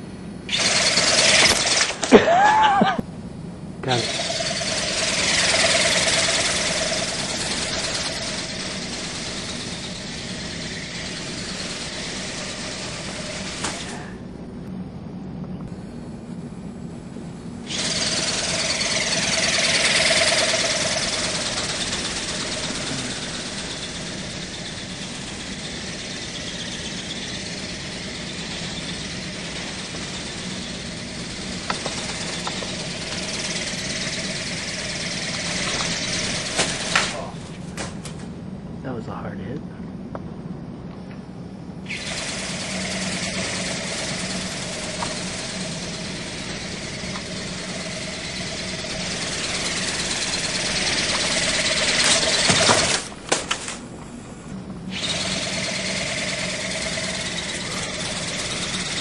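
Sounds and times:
toy ornithopter buzzing: 0.0 - 2.9, 3.8 - 14.4, 17.6 - 37.6, 41.9 - 59.0.

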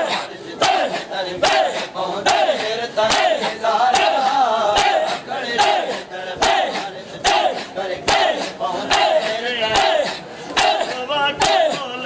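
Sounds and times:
men chanting a lament: 0.0 - 12.0.

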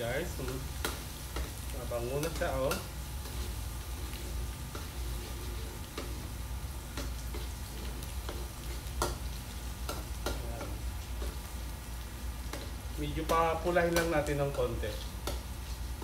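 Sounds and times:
garlic sizzling in hot oil: 0.0 - 16.0
metal spatula scraping a pan: 2.2 - 10.4.

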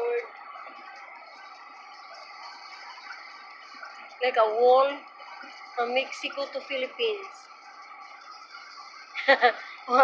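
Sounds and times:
road noise inside car: 0.0 - 10.0.

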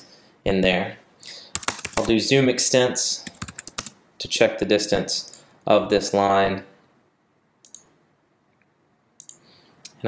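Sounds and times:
computer mouse clicks: 7.6 - 7.9, 9.2 - 10.0.

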